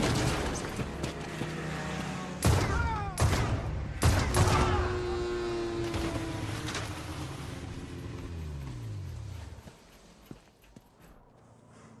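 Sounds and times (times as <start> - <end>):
snowmobile engine whine: 0.3 - 3.2, 3.8 - 12.0.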